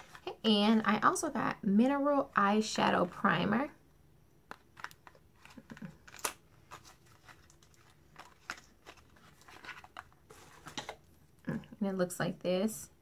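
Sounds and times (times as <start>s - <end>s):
cardboard box crinkling: 4.8s - 11.0s.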